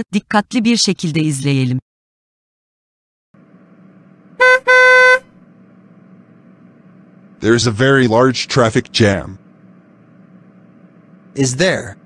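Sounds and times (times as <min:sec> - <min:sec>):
traffic rumble: 0:03.4 - 0:12.0
car horn honking: 0:03.5 - 0:05.6.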